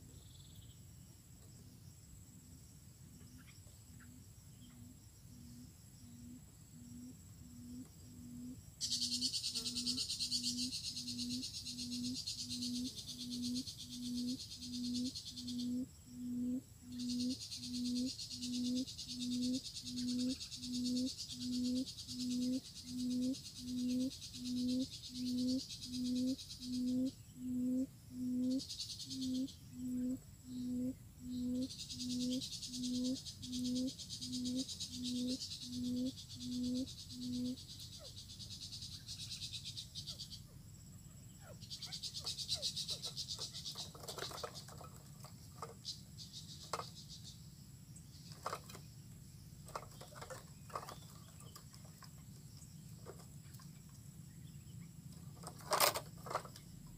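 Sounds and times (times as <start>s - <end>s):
insects buzzing: 0.0s - 56.9s
quail hooting call: 6.1s - 38.2s
rustling clicks in dry grass: 43.4s - 45.8s, 55.4s - 56.6s.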